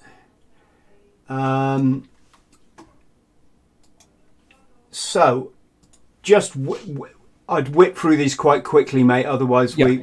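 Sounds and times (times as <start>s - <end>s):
faint computer control clicks: 5.8s - 6.1s.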